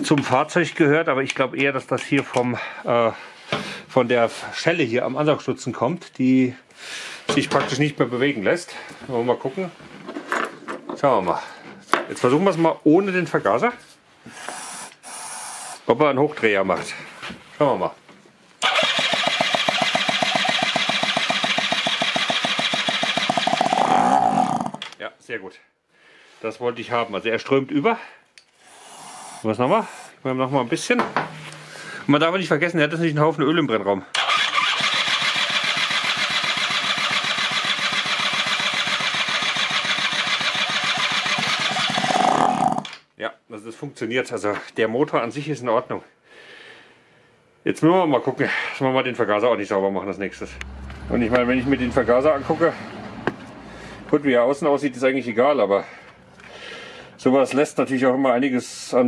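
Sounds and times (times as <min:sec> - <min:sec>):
scooter engine turning over: 0:18.6 - 0:24.9, 0:34.2 - 0:42.9.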